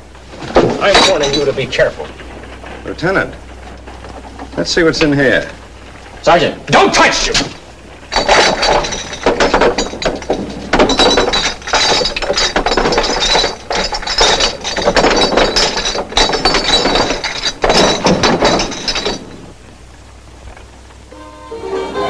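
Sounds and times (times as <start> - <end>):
glass bottles clinking: 0.4 - 2.1, 7.0 - 19.6.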